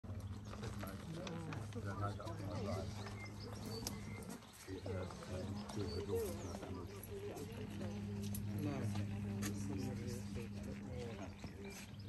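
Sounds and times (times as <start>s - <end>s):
steady low hum: 0.1s - 12.0s
people talking: 0.5s - 12.0s.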